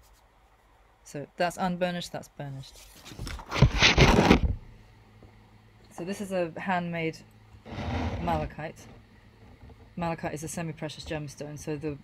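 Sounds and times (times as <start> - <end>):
paper scraping rustle on table: 2.7 - 4.4, 7.7 - 8.5.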